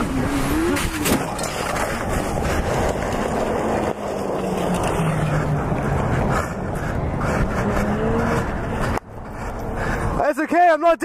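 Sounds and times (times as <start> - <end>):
outdoor noise: 0.0 - 11.0
rushing wind and road noise: 0.0 - 11.0.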